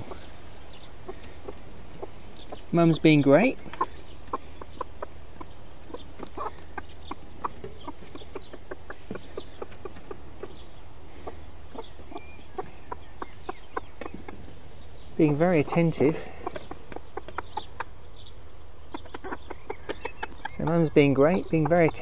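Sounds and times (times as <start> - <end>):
chicks peeping: 0.0 - 22.0
hen clucking: 0.0 - 22.0.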